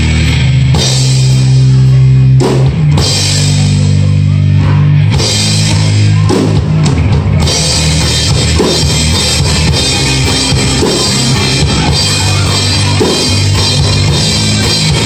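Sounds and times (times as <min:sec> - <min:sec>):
pop-punk band playing: 0:00.0 - 0:15.0
drum hits: 0:04.6 - 0:15.0.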